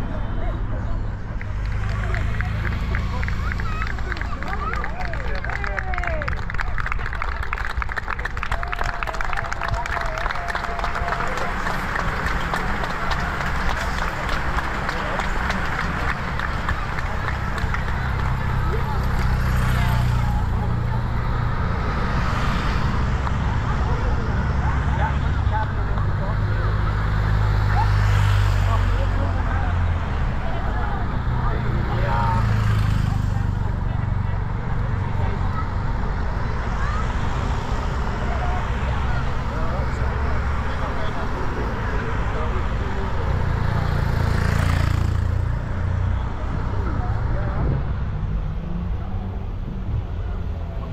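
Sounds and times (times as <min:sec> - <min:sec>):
cars and motorbikes driving past: 0:00.0 - 0:50.9
spectators' voices: 0:00.0 - 0:50.9
bicycles rushing past: 0:07.5 - 0:25.2, 0:42.3 - 0:46.0.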